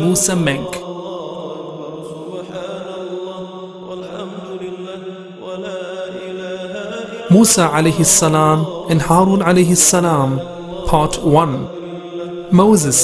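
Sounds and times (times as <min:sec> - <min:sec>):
wordless vocal chanting drone: 0:00.0 - 0:13.0.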